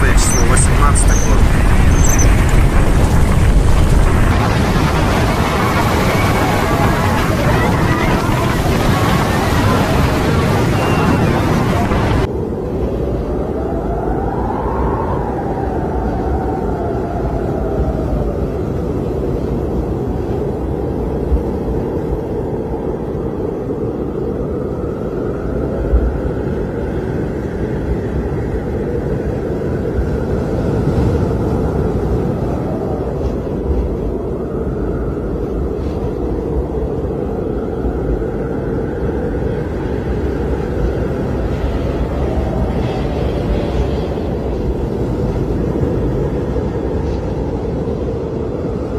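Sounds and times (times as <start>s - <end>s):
whistling wind howl: 0.0s - 48.9s
wind blasting microphone: 0.0s - 48.9s.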